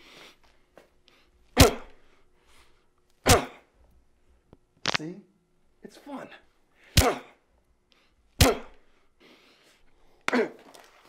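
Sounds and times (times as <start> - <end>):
man coughing: 1.6 - 2.0, 3.2 - 3.7, 6.9 - 7.4, 8.4 - 8.9, 10.3 - 10.7.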